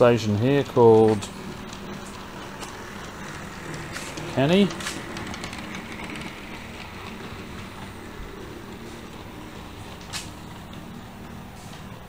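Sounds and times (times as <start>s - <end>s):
model train running on track: 0.0s - 12.0s.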